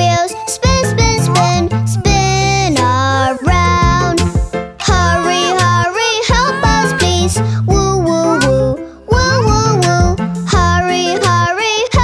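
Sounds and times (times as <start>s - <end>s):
bouncy backing track: 0.0s - 12.0s
children's song singing: 0.0s - 12.0s.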